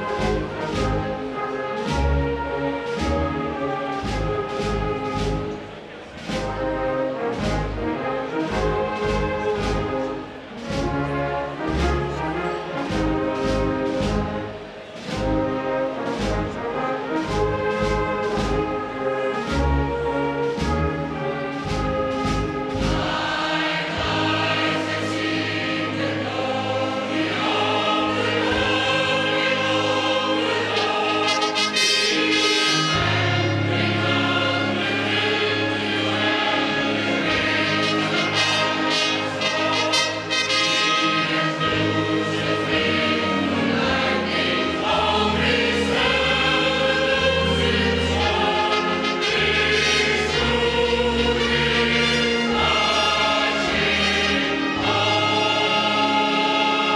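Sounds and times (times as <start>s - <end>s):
brass band playing: 0.0s - 26.2s, 30.3s - 56.9s
choir singing: 0.0s - 56.9s.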